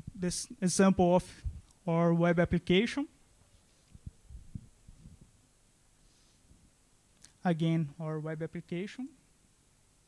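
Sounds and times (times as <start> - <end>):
faint low thumps: 4.0 - 5.4.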